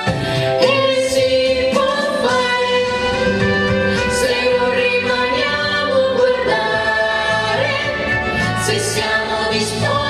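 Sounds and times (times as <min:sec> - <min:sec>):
backing music: 0:00.0 - 0:10.0
voices singing together: 0:00.5 - 0:10.0.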